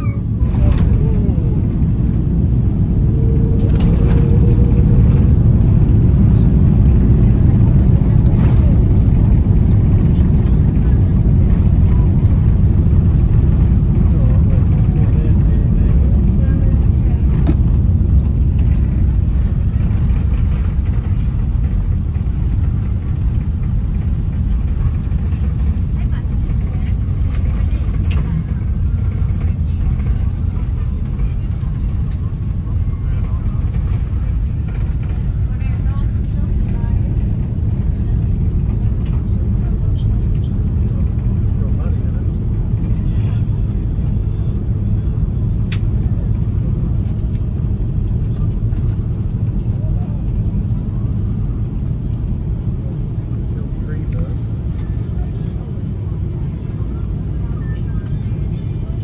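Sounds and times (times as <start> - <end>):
airliner cabin rumble: 0.0 - 59.0.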